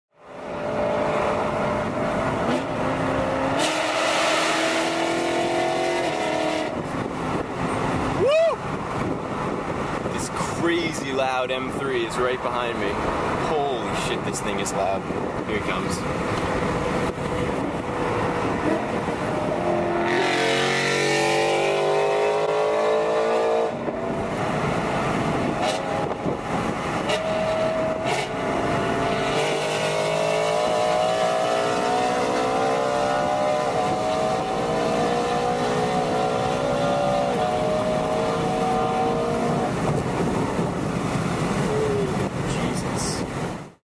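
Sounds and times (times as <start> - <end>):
car engine accelerating hard: 0.2 - 8.2, 16.1 - 42.5.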